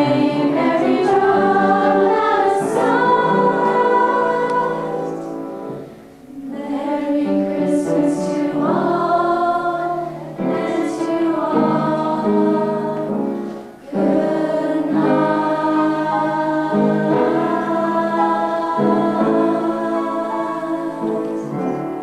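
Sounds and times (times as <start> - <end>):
girls singing in unison: 0.0 - 22.0.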